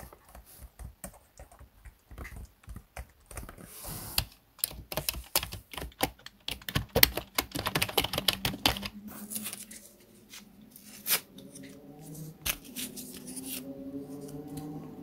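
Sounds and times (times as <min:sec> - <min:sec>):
typing on keyboard: 0:00.0 - 0:09.0.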